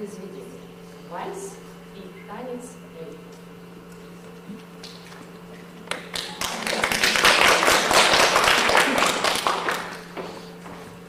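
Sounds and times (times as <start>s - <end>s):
audience applauding: 5.8s - 10.2s.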